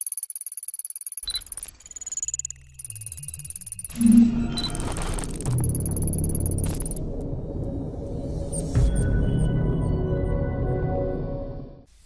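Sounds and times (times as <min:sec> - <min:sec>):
high-pitched electronic ticking: 0:00.0 - 0:07.2.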